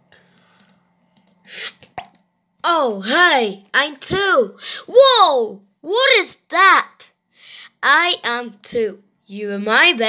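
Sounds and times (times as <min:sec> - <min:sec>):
computer mouse clicks: 0:00.6 - 0:02.2
short hiss: 0:01.4 - 0:01.9.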